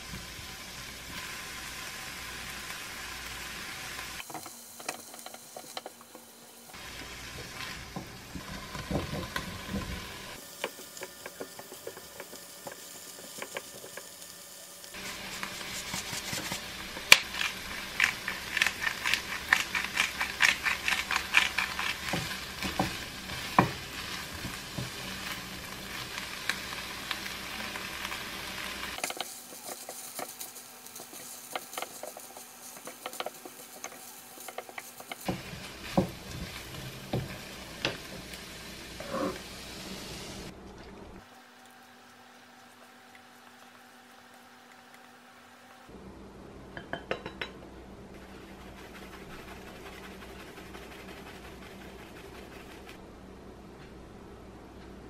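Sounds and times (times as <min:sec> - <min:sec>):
food sizzling in a frying pan: 0:00.0 - 0:40.5
spatula scraping a pan: 0:29.0 - 0:37.4.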